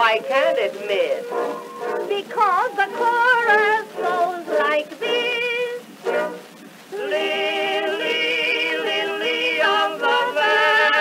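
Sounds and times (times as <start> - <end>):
small orchestra playing: 1.2 - 6.5
person singing with vibrato: 2.1 - 6.2, 6.9 - 11.0.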